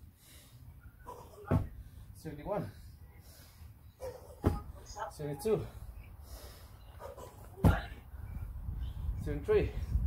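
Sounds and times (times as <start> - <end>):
feet landing on artificial grass: 1.4 - 1.8, 7.4 - 8.0.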